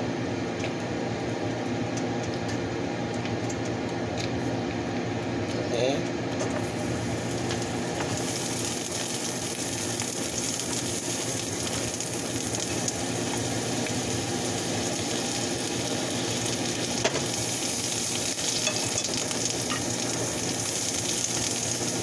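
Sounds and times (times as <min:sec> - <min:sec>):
butter sizzling in a frying pan: 0:06.6 - 0:22.0.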